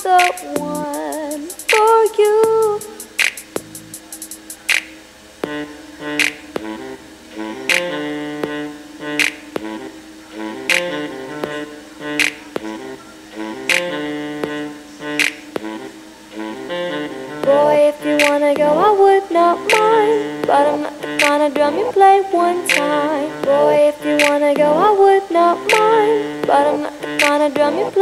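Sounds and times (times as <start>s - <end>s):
keyboard chords and melody: 0.0s - 28.0s
clap or snare hit: 3.2s - 3.6s, 4.7s - 5.0s, 6.2s - 6.4s, 12.2s - 12.4s, 15.2s - 15.5s.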